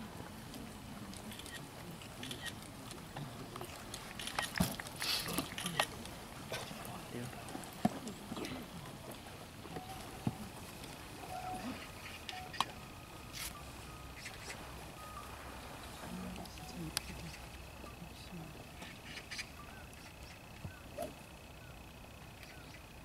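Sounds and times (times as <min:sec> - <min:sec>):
faint voices murmuring: 0:00.0 - 0:22.2
thin steady high tone: 0:09.6 - 0:23.0.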